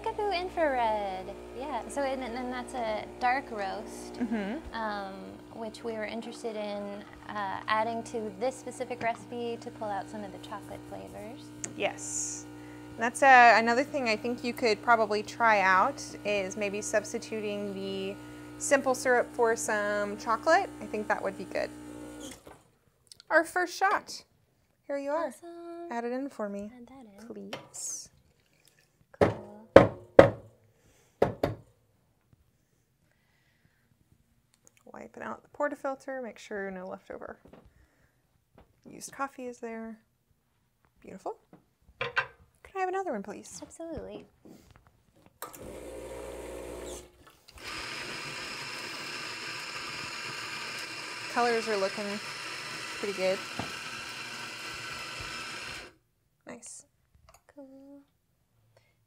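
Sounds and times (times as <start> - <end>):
espresso machine pump running: 0.0 - 4.2, 5.1 - 5.8, 7.0 - 22.4, 45.4 - 56.0.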